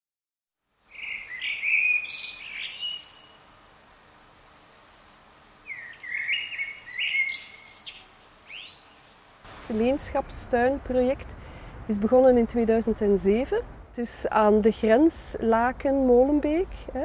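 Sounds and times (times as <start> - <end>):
songbirds chirping and whistling: 0.9 - 3.4, 5.6 - 9.4.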